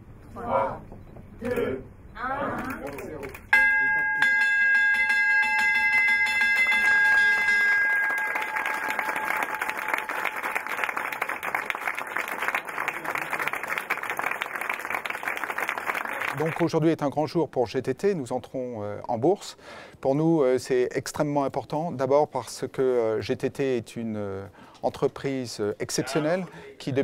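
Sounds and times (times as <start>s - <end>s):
large bell ringing: 3.5s - 11.2s
small group applauding: 5.8s - 16.7s.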